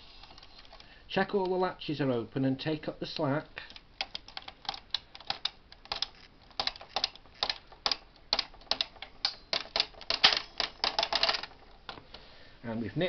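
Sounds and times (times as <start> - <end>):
knitting machine carriage clicking: 3.6 - 11.8.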